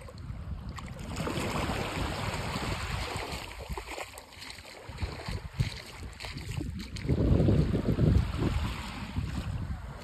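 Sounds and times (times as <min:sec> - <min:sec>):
small waves lapping on sand: 0:00.0 - 0:10.0
wind buffeting microphone: 0:00.0 - 0:10.0.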